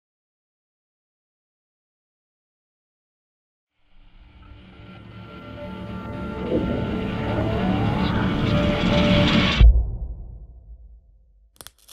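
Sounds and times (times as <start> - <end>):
rising whine: 4.1 - 9.7.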